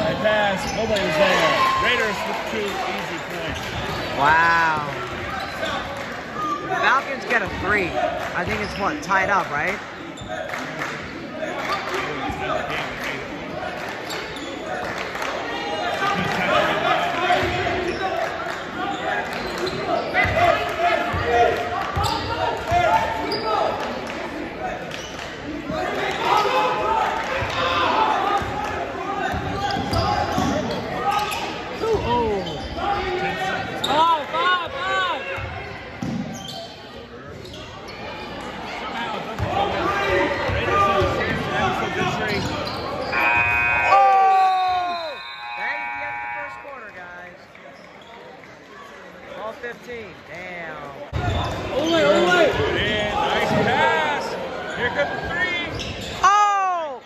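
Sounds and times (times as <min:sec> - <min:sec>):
crowd chatter: 0:00.0 - 0:57.0
sneakers squeaking on court: 0:00.6 - 0:01.4, 0:05.1 - 0:05.9, 0:14.0 - 0:14.9, 0:22.0 - 0:22.5, 0:23.2 - 0:23.7, 0:29.2 - 0:33.2, 0:35.4 - 0:38.7, 0:40.4 - 0:43.4, 0:54.7 - 0:56.2.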